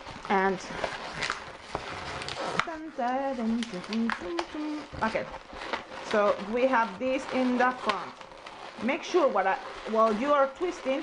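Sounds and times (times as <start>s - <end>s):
balloons rubbing together: 0.0s - 11.0s.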